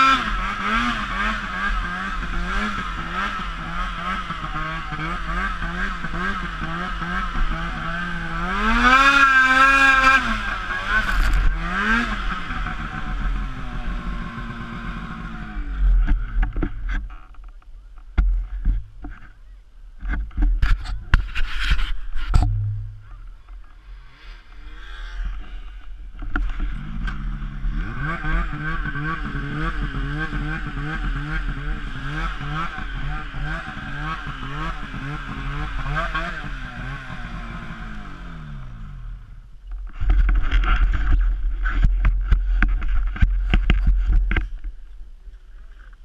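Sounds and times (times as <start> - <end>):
snowmobile rumble moving off: 0.0 - 19.4, 20.0 - 44.9
snowmobile engine idling: 0.0 - 46.0.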